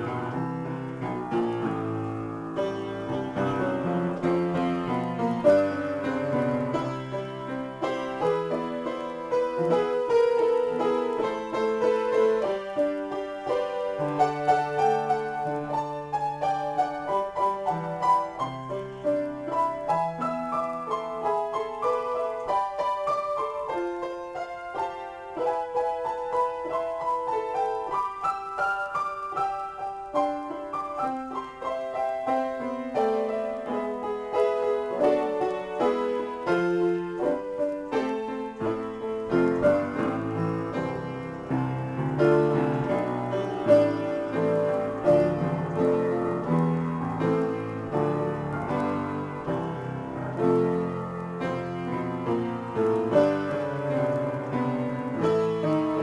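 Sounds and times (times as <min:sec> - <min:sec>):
solo piano improvisation: 0:00.0 - 0:56.0.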